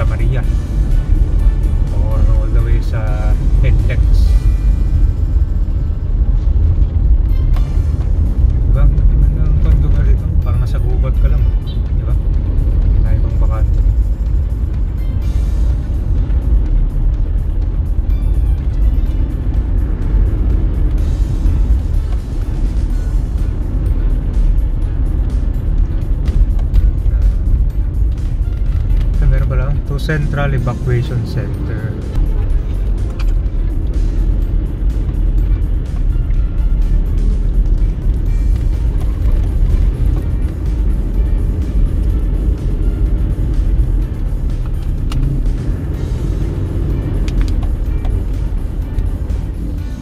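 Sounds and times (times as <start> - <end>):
background music: 0.0 - 50.0
vehicle road rumble: 0.0 - 50.0.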